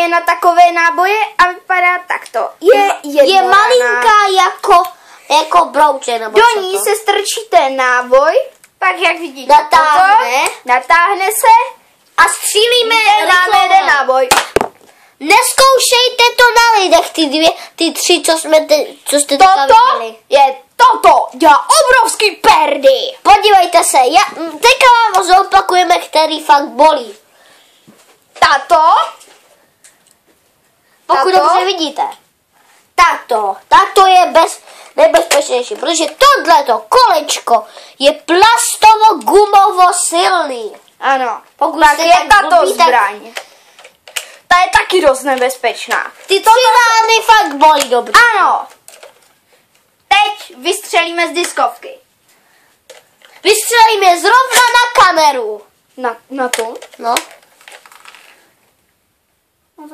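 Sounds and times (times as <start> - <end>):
plastic toy being handled: 42.8 - 51.7, 52.9 - 53.7, 56.4 - 58.5.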